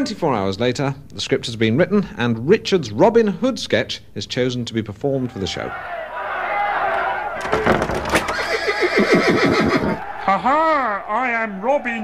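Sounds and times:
horse whinnying: 7.4s - 10.0s.

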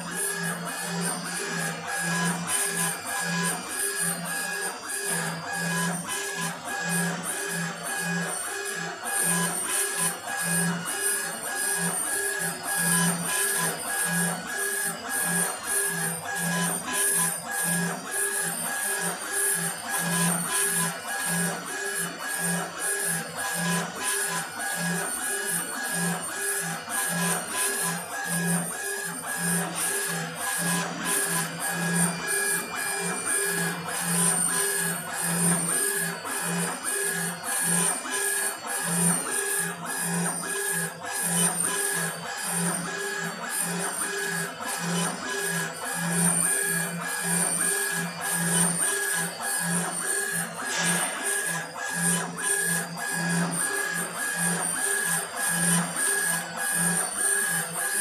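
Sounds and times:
laser engraver whining: 0.0s - 58.0s.

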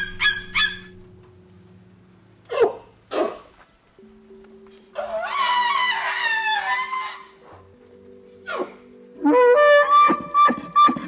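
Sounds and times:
soft background music: 0.0s - 11.0s
elephant trumpeting: 5.0s - 7.6s.

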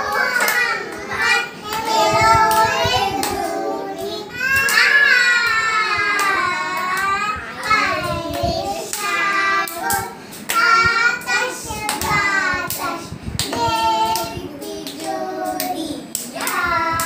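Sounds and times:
children singing: 0.0s - 17.0s
hands clapping: 0.1s - 17.0s.

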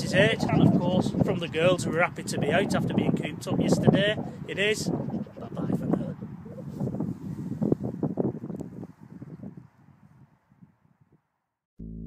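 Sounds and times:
wind buffeting microphone: 0.0s - 11.2s.

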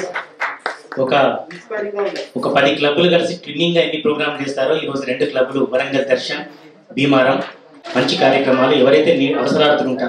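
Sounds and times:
man speaking into a microphone: 1.0s - 1.5s, 2.3s - 10.0s.

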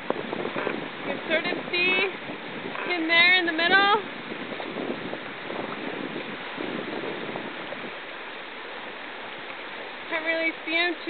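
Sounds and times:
turbulent river rushing: 0.0s - 11.0s.

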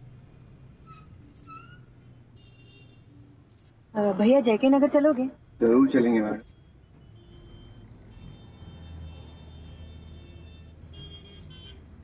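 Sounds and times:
faint chirps: 0.0s - 4.2s, 5.2s - 11.8s
crickets trilling: 0.0s - 12.0s.

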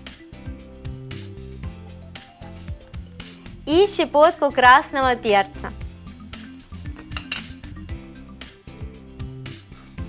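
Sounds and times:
soft background music: 0.0s - 10.0s
utensil clinking against bowl: 7.0s - 7.6s.

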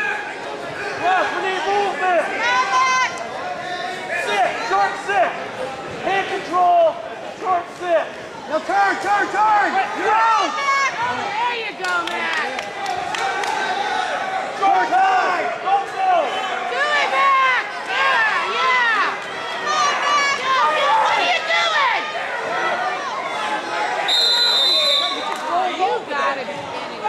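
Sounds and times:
crowd yelling and shouting: 0.0s - 27.0s
high whistle-like tone: 24.1s - 25.4s.

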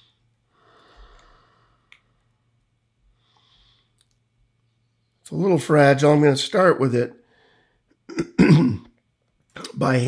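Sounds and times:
man clearing throat: 8.1s - 8.9s.

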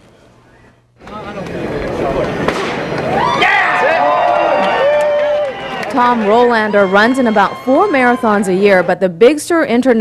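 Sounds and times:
sharp bang: 2.4s - 3.0s
voices whooping and cheering: 3.0s - 8.9s.

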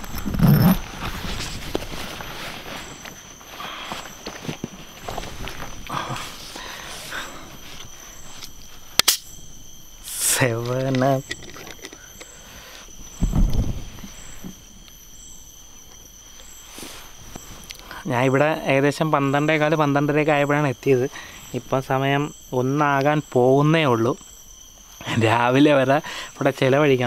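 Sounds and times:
crickets chirping: 0.0s - 27.0s
sharp click: 9.0s - 9.3s
low thump: 13.2s - 14.6s.

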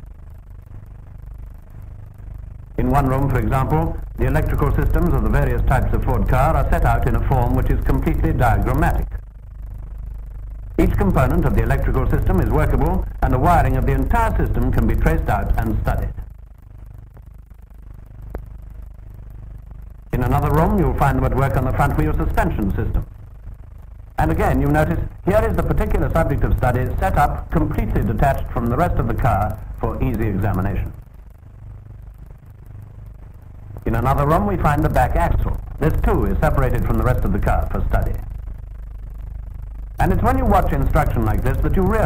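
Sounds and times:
faint hiss: 0.0s - 42.0s
low hum: 0.0s - 42.0s
narration: 0.5s - 42.0s
faint clicks: 3.7s - 42.0s
clicks: 14.0s - 20.7s.

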